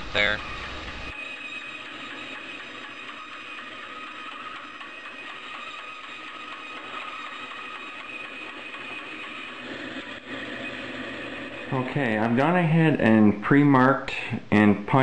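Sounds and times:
bandsaw cutting wood: 0:01.1 - 0:12.5.

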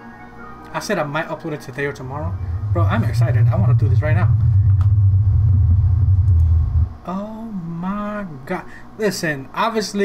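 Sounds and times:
loud deep rumble: 0:02.0 - 0:07.1.

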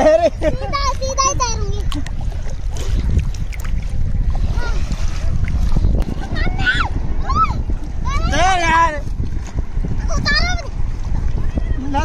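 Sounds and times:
water lapping around waders: 0:00.0 - 0:12.0
wind buffeting microphone: 0:00.0 - 0:12.0
small water splashes: 0:00.9 - 0:12.0.

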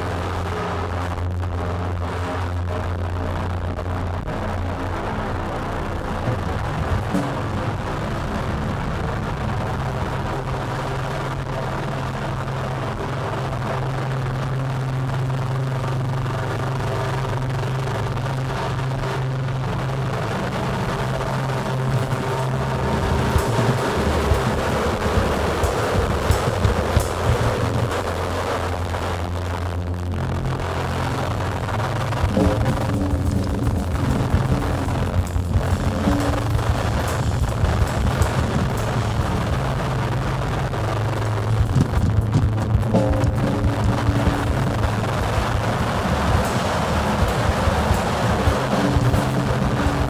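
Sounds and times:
low hum: 0:00.0 - 0:50.0
noisy synthesizer drone: 0:00.0 - 0:50.0
sharp electronic clicks and hits: 0:05.5 - 0:11.5, 0:14.0 - 0:50.0.

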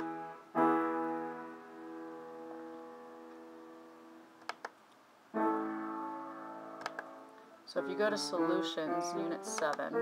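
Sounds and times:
piano note ringing: 0:00.0 - 0:04.2, 0:05.3 - 0:10.0
computer mouse clicks: 0:04.4 - 0:04.8, 0:06.8 - 0:07.1.

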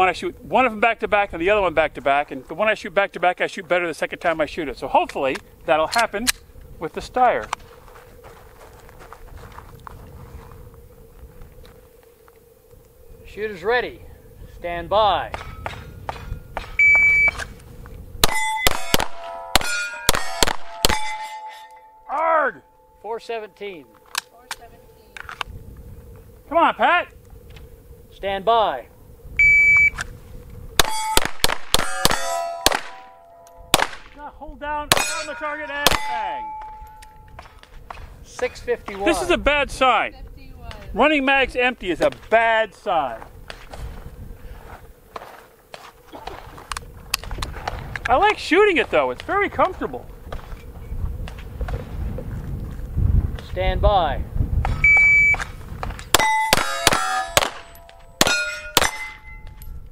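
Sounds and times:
shot timer beep: 0:16.8 - 0:17.4, 0:29.4 - 0:30.0, 0:54.8 - 0:55.5
rapid pistol shots: 0:18.2 - 0:21.1, 0:30.8 - 0:33.1, 0:33.7 - 0:34.1, 0:56.2 - 0:59.1
ringing steel plates: 0:18.2 - 0:23.1, 0:30.8 - 0:31.2, 0:31.8 - 0:33.8, 0:34.9 - 0:37.3, 0:56.2 - 0:59.7.

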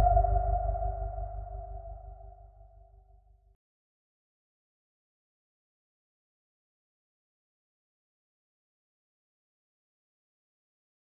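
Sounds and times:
ringing tone: 0:00.0 - 0:02.3
low rumble: 0:00.0 - 0:03.0.

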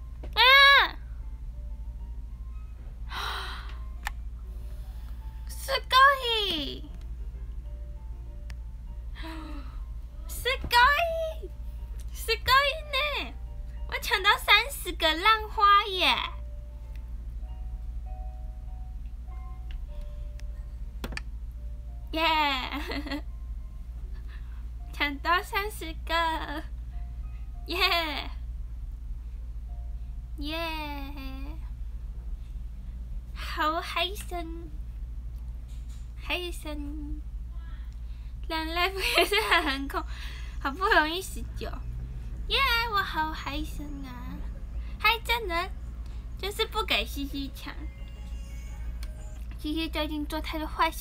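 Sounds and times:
steady low hum: 0:00.0 - 0:51.0
woman sighing: 0:03.1 - 0:03.8, 0:09.2 - 0:09.8.

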